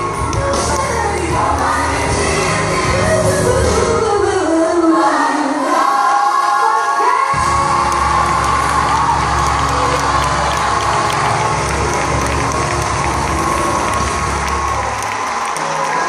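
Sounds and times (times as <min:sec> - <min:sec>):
congregation cheering and applauding: 0:00.0 - 0:03.6, 0:07.3 - 0:16.0.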